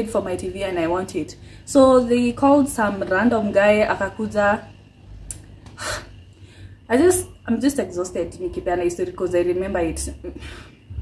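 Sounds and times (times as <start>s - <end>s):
woman speaking: 0.0s - 4.7s, 6.9s - 10.4s
woman breathing: 1.4s - 1.7s, 5.7s - 6.9s, 10.4s - 11.0s.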